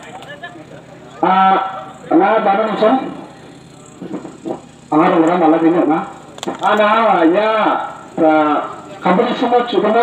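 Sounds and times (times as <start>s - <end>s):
faint voices: 0.0s - 10.0s
low background murmur: 0.0s - 10.0s
man speaking over microphone: 4.9s - 10.0s.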